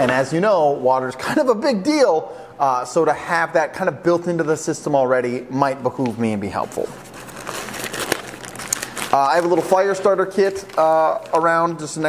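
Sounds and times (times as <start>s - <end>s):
plastic bag crinkling: 6.6s - 12.0s.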